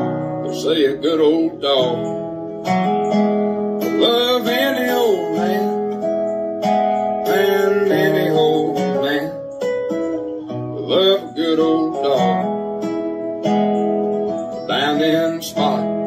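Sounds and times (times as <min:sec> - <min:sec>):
country song on acoustic guitar: 0:00.0 - 0:16.0.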